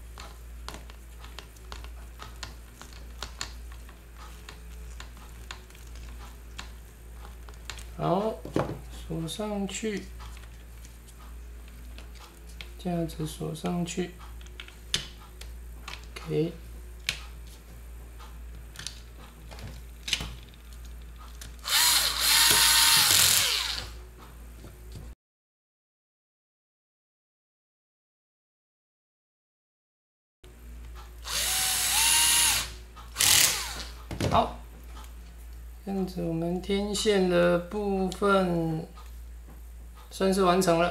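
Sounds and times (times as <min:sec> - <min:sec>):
steady low hum: 0:00.0 - 0:25.2, 0:30.5 - 0:40.9
electric screwdriver whine: 0:21.6 - 0:24.0, 0:31.2 - 0:34.0.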